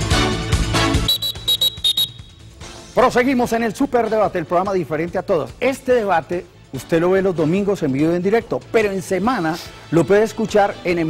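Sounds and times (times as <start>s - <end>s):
music: 0.0s - 11.0s
referee's whistle short blasts: 1.0s - 2.6s.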